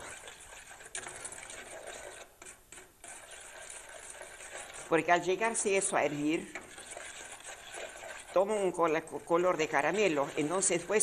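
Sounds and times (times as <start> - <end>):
spoon stirring in metal saucepan: 0.0 - 11.0.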